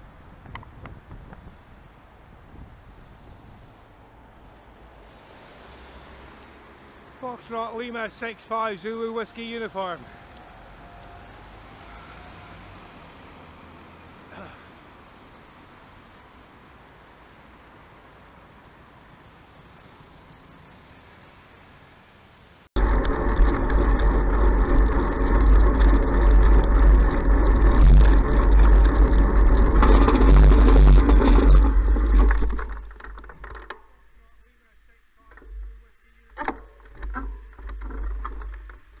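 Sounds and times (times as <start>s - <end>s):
wind rumble on microphone: 0.0s - 3.7s, 22.8s - 33.3s
road and traffic noise: 0.0s - 39.0s
short falling squeak: 29.7s - 33.2s.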